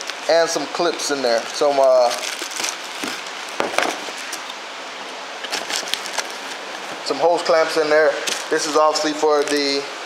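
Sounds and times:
plastic packaging crinkling: 0.0 - 4.6, 5.4 - 7.0.

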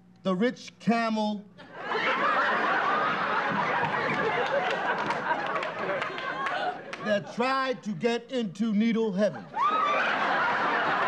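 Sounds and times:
audience laughing: 1.6 - 7.6, 9.2 - 11.0.

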